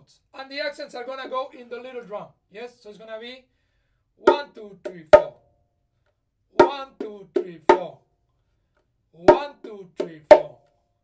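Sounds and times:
bongos played by hand: 4.3s - 5.4s, 6.6s - 8.0s, 9.3s - 10.6s.

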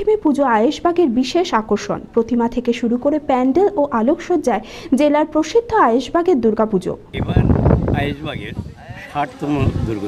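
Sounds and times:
outdoor background noise: 0.0s - 10.0s
man speaking: 7.2s - 10.0s.

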